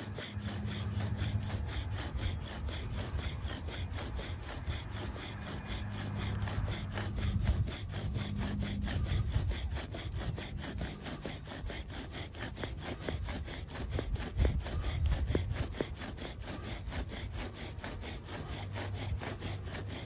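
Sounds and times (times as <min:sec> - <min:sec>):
bow drill wooden grinding: 0:00.0 - 0:20.0.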